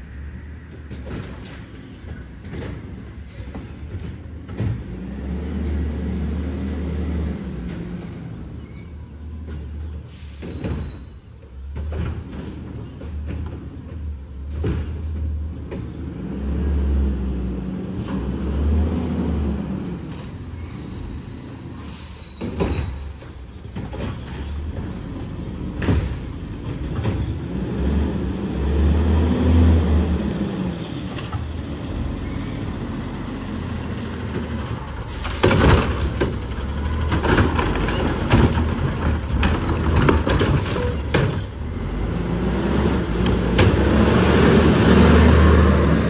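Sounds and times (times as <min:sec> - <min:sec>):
diesel engine revving: 0:04.5 - 0:08.5, 0:15.6 - 0:20.9, 0:24.7 - 0:46.0.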